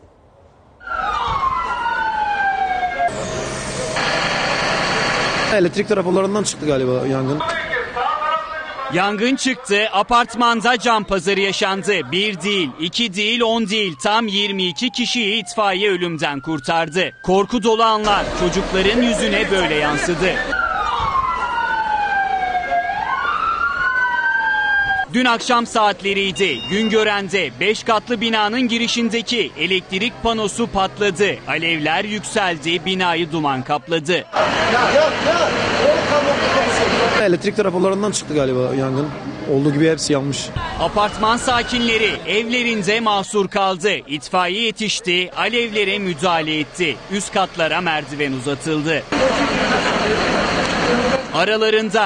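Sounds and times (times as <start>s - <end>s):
street noise rushing: 0.0s - 52.0s
siren wailing: 0.8s - 5.8s, 10.7s - 33.3s, 40.6s - 43.0s.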